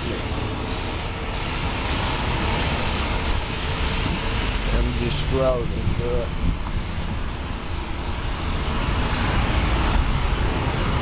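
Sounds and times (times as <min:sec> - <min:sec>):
passing traffic rush: 0:00.0 - 0:11.0.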